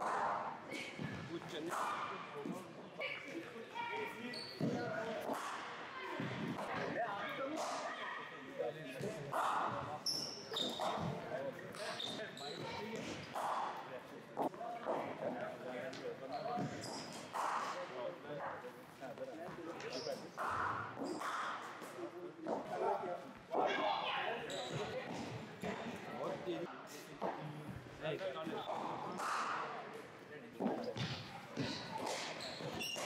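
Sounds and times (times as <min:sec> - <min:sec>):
voices echoing in a hall: 0:00.0 - 0:33.0.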